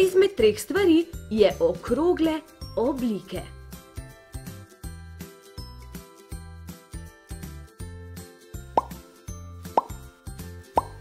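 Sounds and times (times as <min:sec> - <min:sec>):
light background music: 0:00.0 - 0:11.0
rising plop sound effects: 0:08.8 - 0:09.0, 0:09.7 - 0:10.0, 0:10.8 - 0:11.0.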